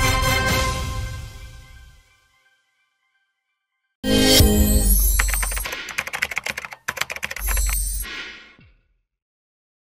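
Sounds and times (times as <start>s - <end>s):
keyboard key clicks: 5.2s - 8.0s.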